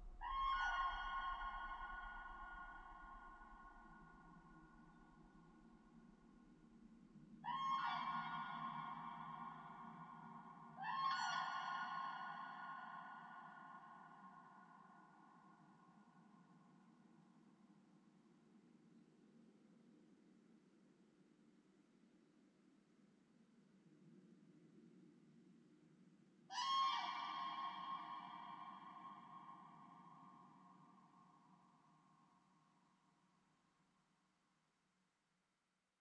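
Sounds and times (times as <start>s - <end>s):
soft low drone: 0.0s - 5.6s.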